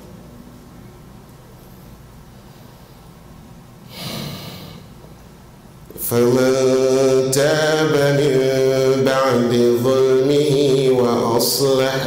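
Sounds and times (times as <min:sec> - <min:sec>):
man chanting over microphone: 0:05.9 - 0:12.0.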